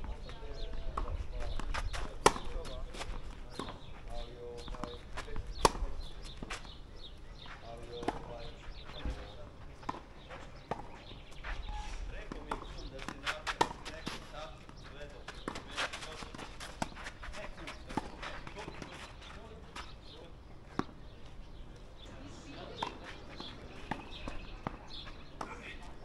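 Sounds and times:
background voices talking: 0.0 - 26.0
tennis ball bounces: 0.6 - 3.9, 4.6 - 6.8, 7.8 - 11.2, 12.2 - 19.2, 20.7 - 21.0, 22.6 - 26.0
tennis racquet strikes: 2.0 - 3.9, 5.5 - 5.8, 12.3 - 14.3.

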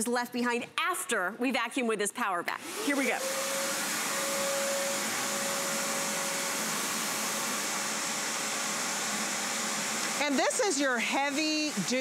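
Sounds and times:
shop vacuum running: 2.6 - 12.0.

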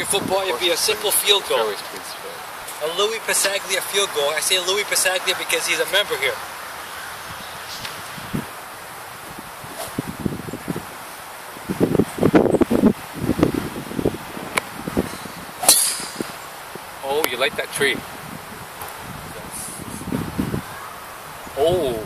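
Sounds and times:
wind gusts on microphone: 0.0 - 22.0
golf club striking ball: 14.5 - 16.4.

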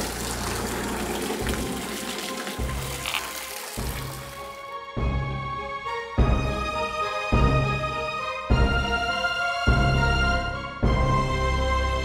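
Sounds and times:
fountain jet splashing into pool: 0.0 - 4.6.

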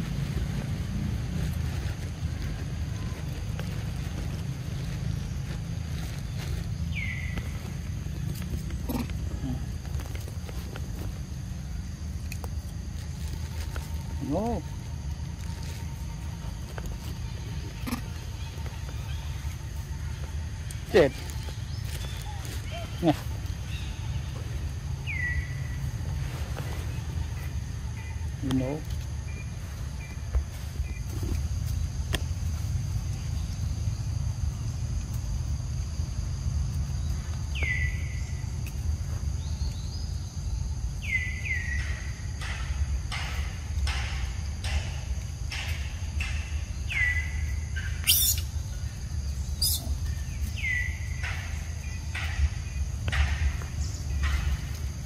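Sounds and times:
steady low rumble: 0.0 - 41.1
high animal call: 47.0 - 48.6, 49.5 - 51.5
monkey calls sweeping down: 48.0 - 48.5, 49.6 - 50.0.

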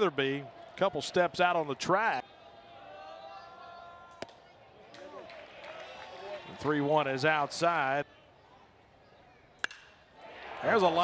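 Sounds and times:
faint background noise: 0.0 - 11.0
metal bat striking ball: 9.6 - 10.0.

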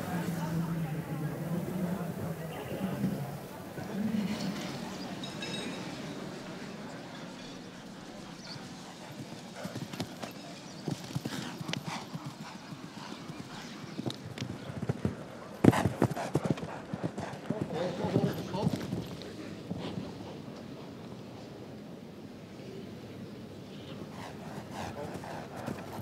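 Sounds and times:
horse hooves thudding on turf: 14.0 - 17.3.

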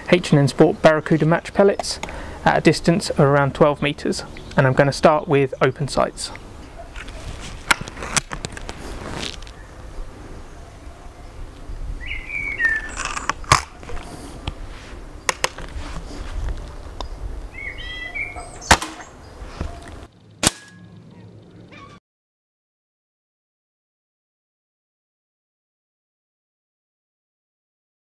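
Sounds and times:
birds chirping: 0.0 - 7.8, 9.4 - 22.0
air rifle cocking clicks: 12.9 - 13.9, 15.3 - 15.7
air rifle shot: 18.6 - 19.2, 20.4 - 20.8.

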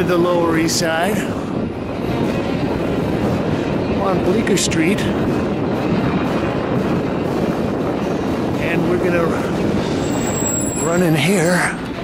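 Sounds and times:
traffic rush: 0.0 - 12.0
wind on microphone: 0.0 - 12.0.

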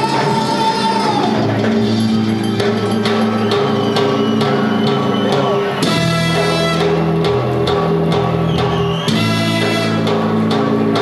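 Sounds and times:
drum kit and percussion: 0.0 - 11.0
guitar and bass chords: 1.4 - 11.0.

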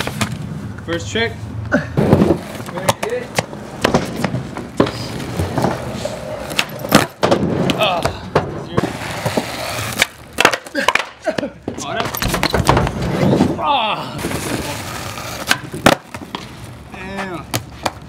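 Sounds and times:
skateboard rolling on rough concrete: 2.0 - 11.2, 12.0 - 13.6, 14.2 - 18.0
skateboard deck clacking: 2.0 - 13.4, 14.2 - 16.6.

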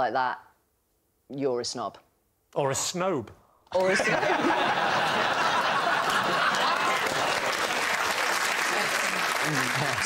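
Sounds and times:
audience applauding: 3.8 - 10.0
audience laughing: 3.8 - 10.0.

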